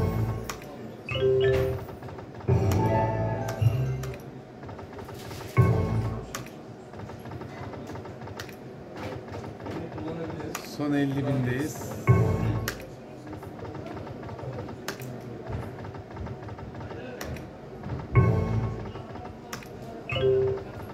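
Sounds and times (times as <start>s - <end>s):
slot game musical jingles: 0.0s - 1.9s, 2.5s - 4.2s, 20.1s - 20.8s
clicks of spinning reels: 6.3s - 12.1s, 12.7s - 18.1s.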